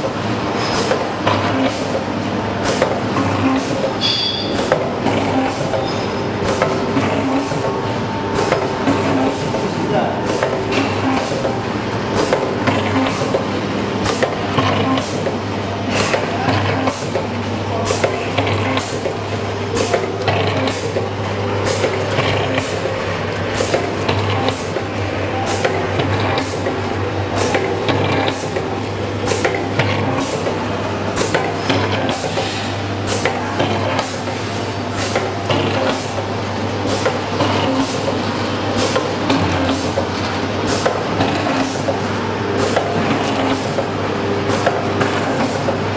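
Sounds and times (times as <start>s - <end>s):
machine hum: 0.0s - 45.9s.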